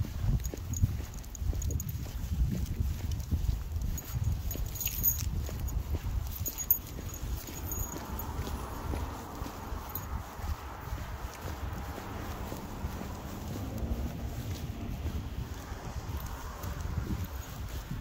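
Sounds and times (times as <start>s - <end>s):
dog paws on concrete: 0.0s - 18.0s
footsteps on concrete: 0.0s - 18.0s
low uneven rumble: 6.6s - 17.9s.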